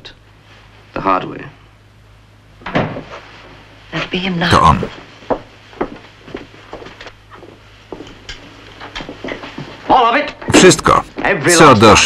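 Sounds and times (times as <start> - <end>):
low steady hum: 0.0 - 12.0
footsteps on hard floor: 4.9 - 9.9.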